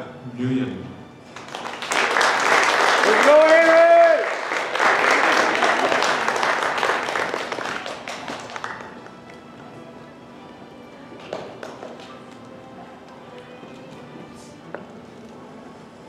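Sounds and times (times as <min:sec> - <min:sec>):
audience applauding: 0:01.3 - 0:09.3, 0:11.2 - 0:12.2
person cheering: 0:03.1 - 0:04.4.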